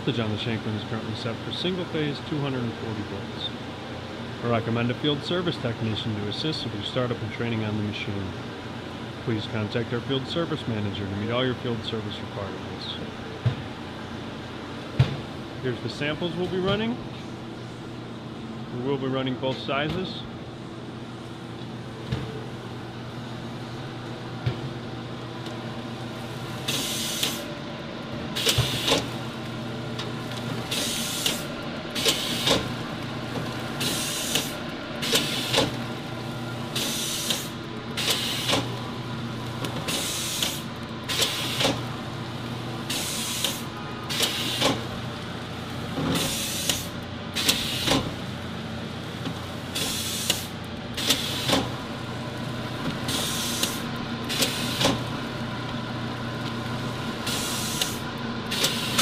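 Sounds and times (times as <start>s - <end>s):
machine hum: 0.0s - 59.0s.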